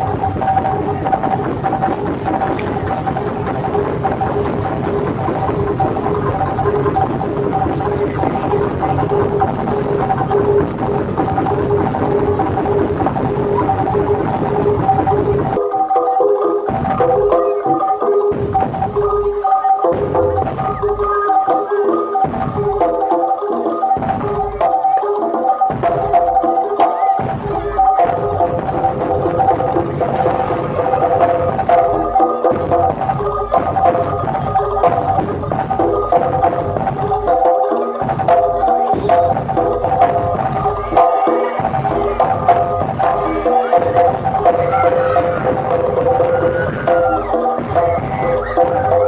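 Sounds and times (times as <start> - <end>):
low rumble of drums and ensemble: 0.0 - 15.6, 16.7 - 21.5, 27.2 - 49.0
gamelan notes alternating low and high: 0.0 - 49.0.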